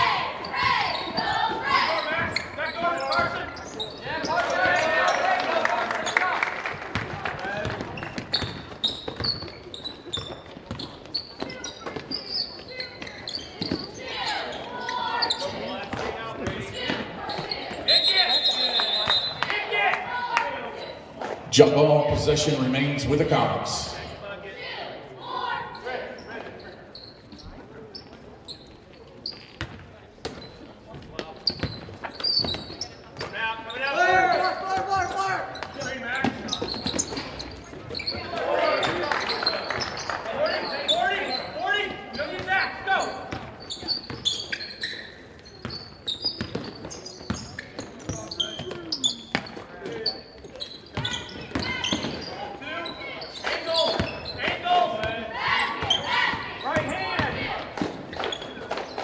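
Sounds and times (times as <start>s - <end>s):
voices calling out with echo: 0.0s - 28.0s, 32.4s - 59.0s.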